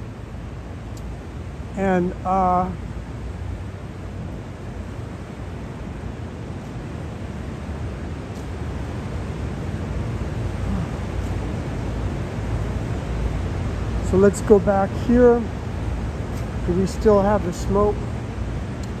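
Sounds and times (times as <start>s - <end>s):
city rumble with hiss: 0.0s - 19.0s.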